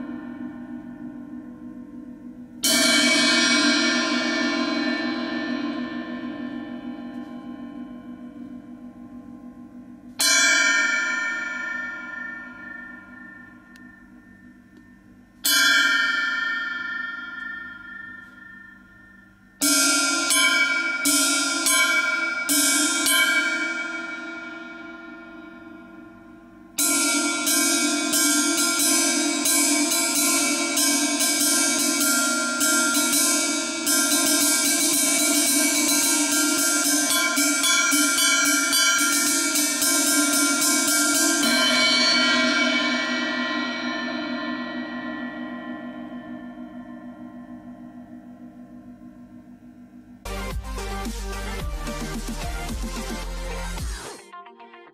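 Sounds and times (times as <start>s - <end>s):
cymbal struck with drumstick: 0.0s - 53.2s.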